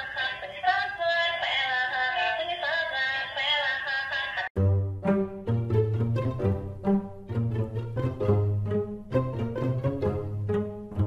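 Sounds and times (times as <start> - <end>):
song from small toy speaker: 0.0 - 4.6
music with deep bass and plucked strings: 4.6 - 11.0.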